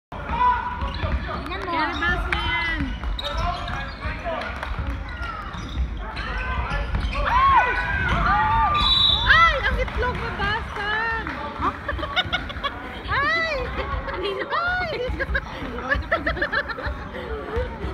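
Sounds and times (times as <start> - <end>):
sneakers squeaking on court: 0.7 - 4.2, 5.1 - 10.6.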